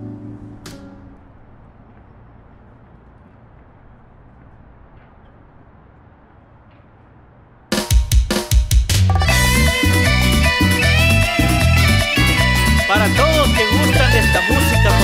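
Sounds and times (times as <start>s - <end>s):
low background noise: 0.0s - 8.5s
drum kit fill: 7.7s - 15.0s
loud latin song: 9.2s - 15.0s.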